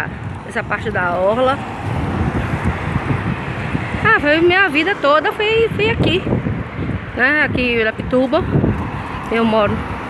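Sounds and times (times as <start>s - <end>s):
road traffic: 0.0s - 10.0s
wind buffeting microphone: 0.0s - 10.0s.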